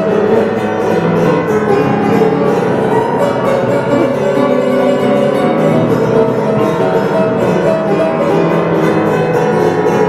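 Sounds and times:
old upright piano tune: 0.0s - 10.0s.

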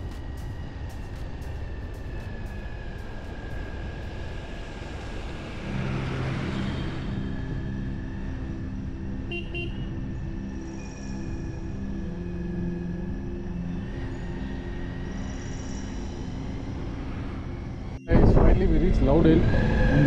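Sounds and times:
vehicle road noise on wet road: 0.0s - 8.4s
low steady tones: 0.0s - 20.0s
car horn toots: 9.3s - 9.9s
wind noise: 15.7s - 20.0s.

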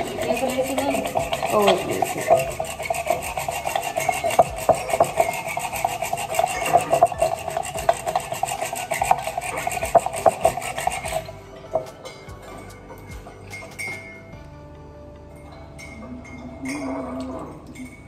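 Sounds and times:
eggs beaten in glass bowl: 0.0s - 14.1s.

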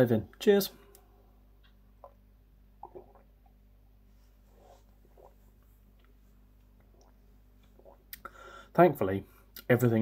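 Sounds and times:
person sipping and swallowing: 1.6s - 3.7s, 4.5s - 8.7s.

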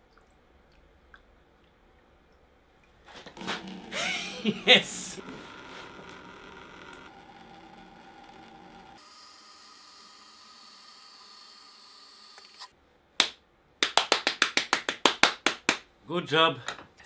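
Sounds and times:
person clapping: 13.2s - 15.8s.

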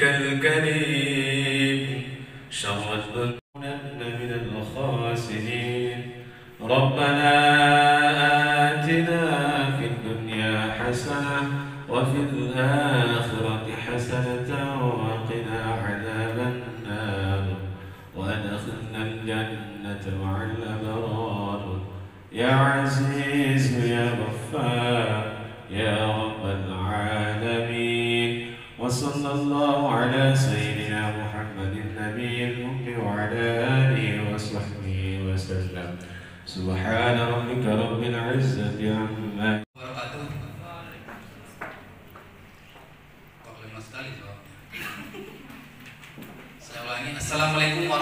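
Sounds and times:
man chanting prayer into microphone: 0.0s - 41.1s.

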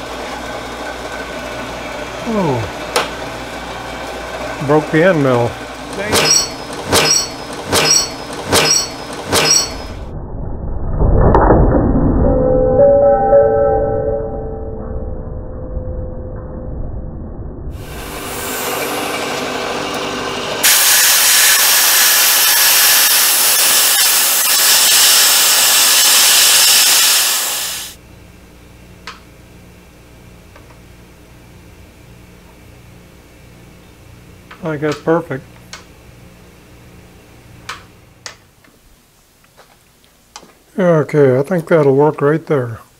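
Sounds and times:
milling machine cutting metal: 0.0s - 10.0s, 17.8s - 27.9s.

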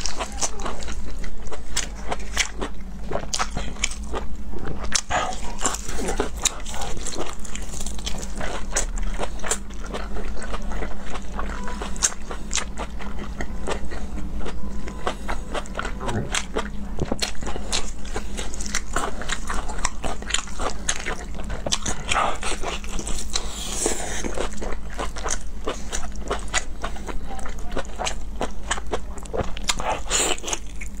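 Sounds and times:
steady low hum: 0.0s - 31.0s
wet chewing and biting: 0.0s - 31.0s.

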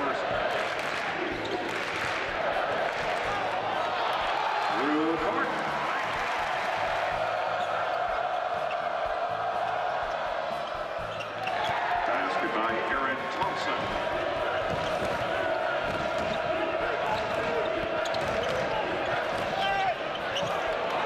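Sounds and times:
murmur of arena crowd: 0.0s - 21.0s.

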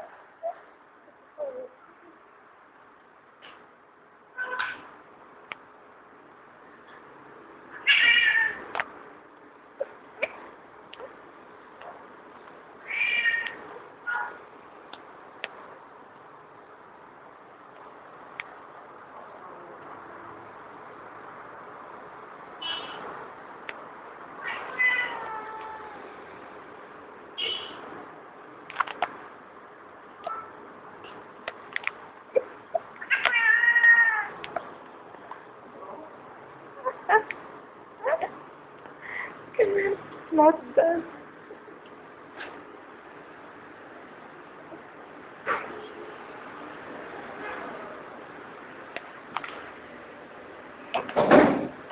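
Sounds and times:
cat meowing: 7.7s - 8.6s, 12.8s - 14.4s, 24.4s - 26.0s, 33.0s - 34.4s.

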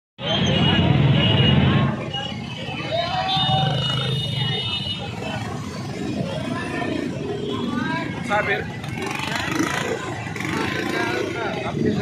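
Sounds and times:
crowd shouting and talking: 0.2s - 12.0s
motorcycle engines running slowly: 3.4s - 12.0s.

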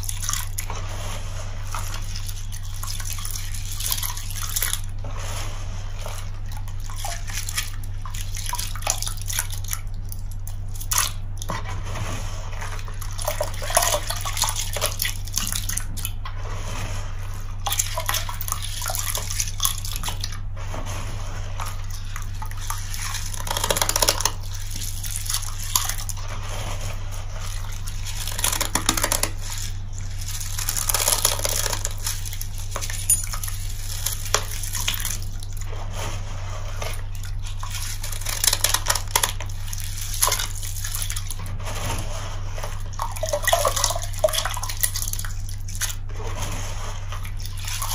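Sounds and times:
sponge squelching: 0.0s - 47.9s
liquid dripping into tub: 6.2s - 11.6s, 12.7s - 16.2s, 17.5s - 20.5s, 21.8s - 26.2s, 27.5s - 35.7s, 36.9s - 41.6s, 42.7s - 46.1s.

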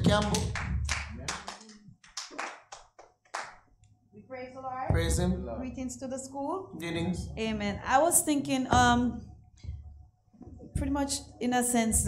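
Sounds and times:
people clapping: 0.0s - 3.7s.

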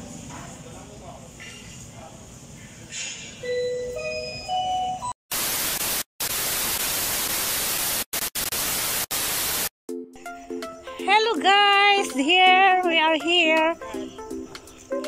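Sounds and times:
television static hiss: 5.3s - 9.7s.

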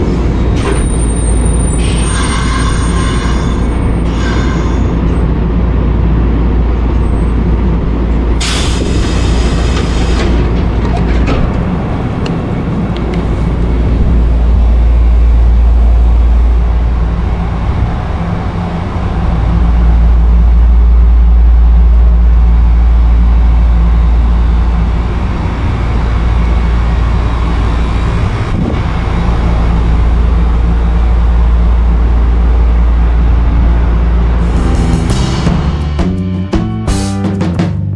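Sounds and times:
electric train rumble and hum: 0.0s - 37.9s.

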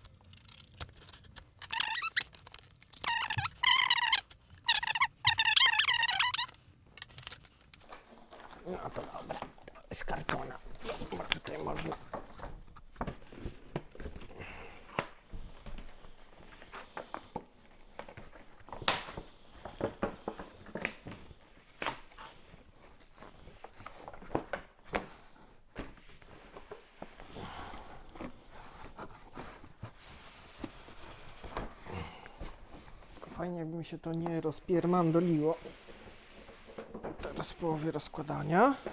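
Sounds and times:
packaging rustling and tearing: 0.0s - 14.3s, 15.0s - 24.6s.

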